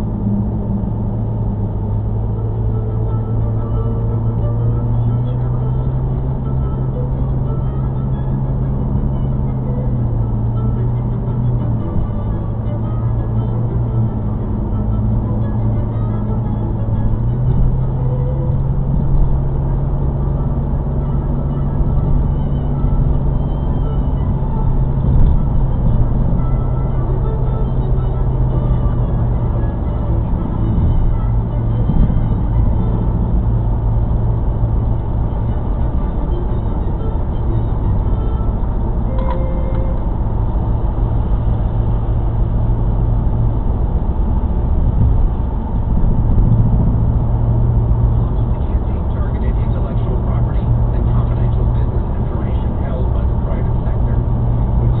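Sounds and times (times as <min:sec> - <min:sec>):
car engine and tyre drone: 0:00.0 - 0:55.0
car radio music: 0:02.4 - 0:43.7, 0:47.8 - 0:55.0.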